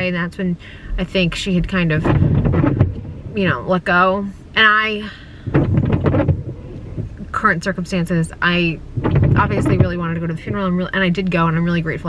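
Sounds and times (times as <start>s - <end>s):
windshield wiper swishing: 1.4s - 4.0s, 5.4s - 12.0s.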